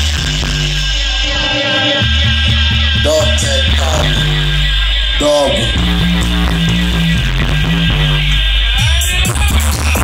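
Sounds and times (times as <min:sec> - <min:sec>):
dub reggae through sound system: 0:00.0 - 0:10.0
pulsing bassline: 0:00.0 - 0:10.0.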